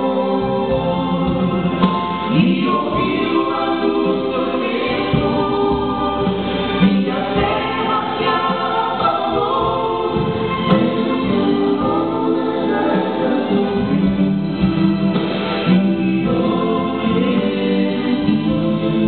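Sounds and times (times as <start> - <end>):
gospel vocal trio singing in harmony: 0.0 - 19.0.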